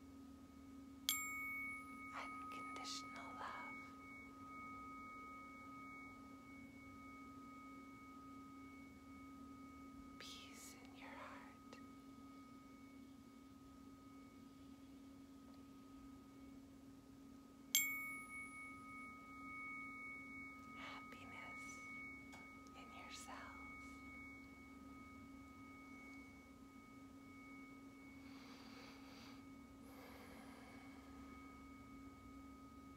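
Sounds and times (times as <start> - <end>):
tuning fork struck: 0.0 - 32.9
tuning forks ringing: 0.0 - 32.9.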